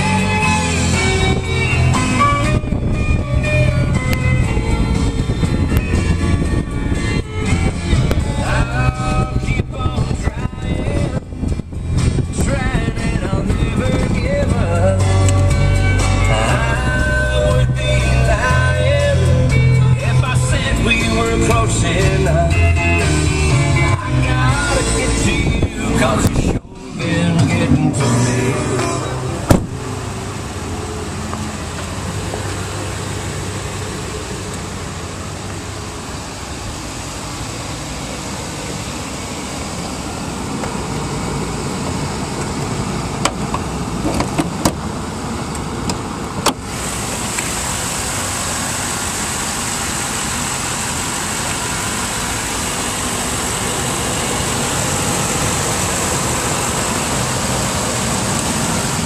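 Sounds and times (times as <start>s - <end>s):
car engine running: 0.0s - 59.0s.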